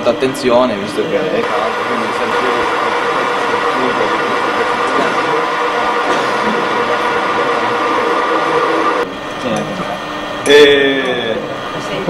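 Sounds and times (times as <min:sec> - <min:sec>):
metal cutting noise: 0:00.0 - 0:11.9
gear whine: 0:00.0 - 0:12.0
lathe whirring: 0:00.0 - 0:12.0.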